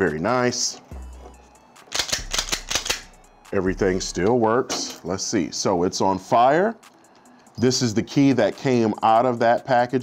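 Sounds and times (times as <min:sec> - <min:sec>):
pistol slide metallic clicks: 0:01.9 - 0:03.1.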